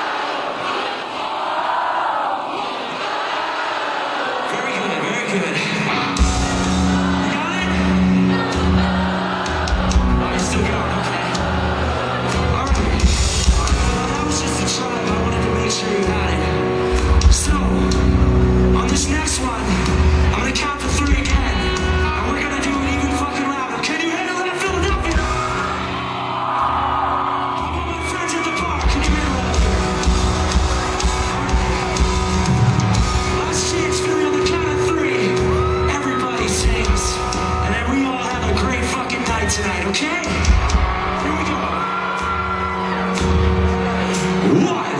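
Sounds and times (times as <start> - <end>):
crowd singing along: 0.0 - 14.4
rock band playing live: 5.5 - 44.9.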